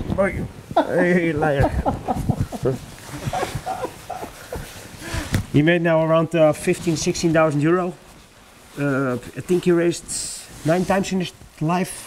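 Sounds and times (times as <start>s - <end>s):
rustling on microphone: 0.0s - 5.6s, 6.4s - 11.7s
man laughing softly: 0.8s - 5.3s.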